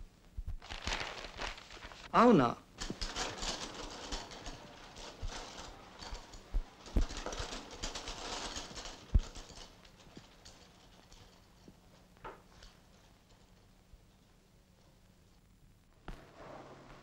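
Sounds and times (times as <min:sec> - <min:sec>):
light clicking and rattling: 0:02.8 - 0:15.5.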